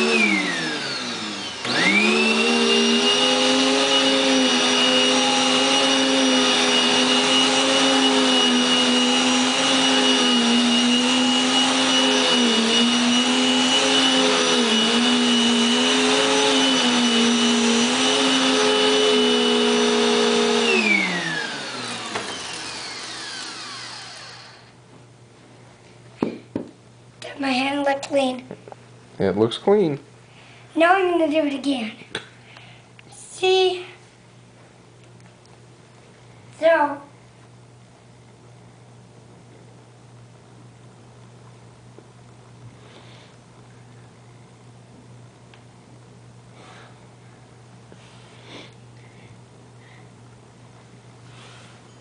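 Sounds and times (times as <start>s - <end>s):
vacuum cleaner motor running: 0.0s - 24.8s.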